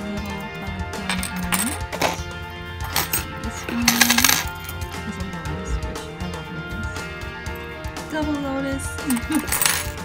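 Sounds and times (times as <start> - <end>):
metal bangles clinking: 0.0 - 5.2, 9.0 - 10.0
background music: 0.0 - 10.0.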